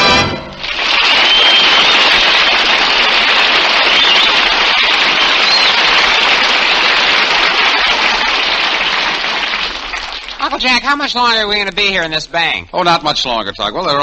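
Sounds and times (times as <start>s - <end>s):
audience applauding: 0.0s - 11.8s.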